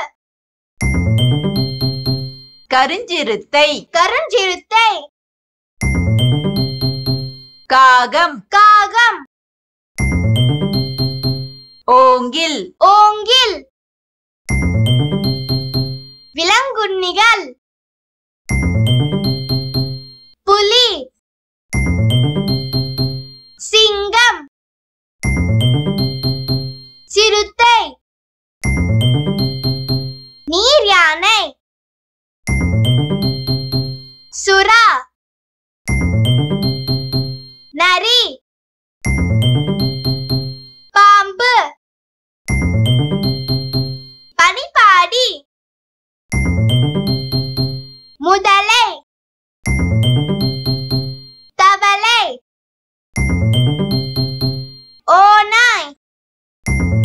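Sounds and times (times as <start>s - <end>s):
low tune: 0.8s - 2.5s, 5.8s - 7.5s, 10.0s - 11.6s, 14.5s - 16.2s, 18.5s - 20.1s, 21.8s - 23.4s, 25.2s - 26.9s, 28.7s - 30.2s, 32.5s - 34.1s, 36.0s - 37.5s, 39.1s - 40.7s, 42.6s - 44.0s, 49.8s - 51.1s, 53.3s - 54.7s
bell-like chiming jingle: 0.8s - 2.6s, 5.8s - 7.6s, 10.0s - 11.8s, 14.5s - 16.3s, 18.5s - 20.3s, 21.8s - 23.6s, 25.2s - 27.0s
chiming jingle: 0.8s - 2.7s, 10.0s - 11.8s, 14.5s - 16.3s
music jingle quick run of notes: 0.8s - 2.7s, 5.8s - 7.7s, 10.0s - 11.8s, 14.5s - 16.3s, 18.5s - 20.4s, 21.8s - 23.6s, 25.2s - 27.1s, 28.6s - 30.5s, 32.5s - 34.3s, 35.9s - 37.7s, 39.1s - 40.9s, 42.5s - 44.3s, 46.3s - 48.2s, 49.7s - 51.5s, 53.2s - 55.0s, 56.7s - 57.0s.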